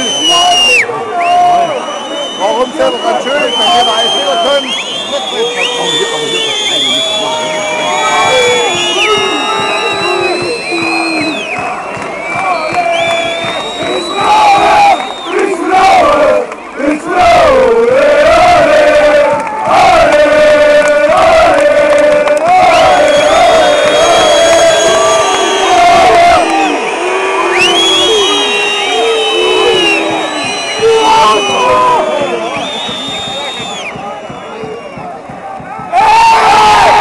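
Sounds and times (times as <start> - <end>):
stadium crowd chanting: 5.6 - 37.0.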